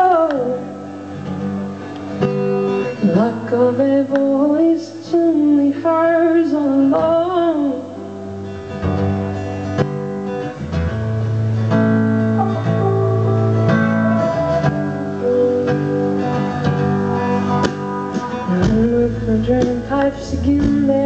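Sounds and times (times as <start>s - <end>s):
strummed acoustic guitar: 0.0s - 21.0s
live band playing instrumental: 0.8s - 3.3s, 8.6s - 21.0s.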